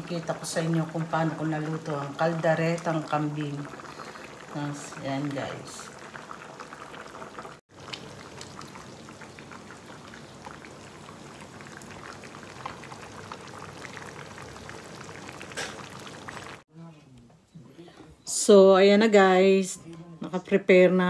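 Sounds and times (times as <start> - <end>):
stew bubbling in a pan: 0.0 - 16.7.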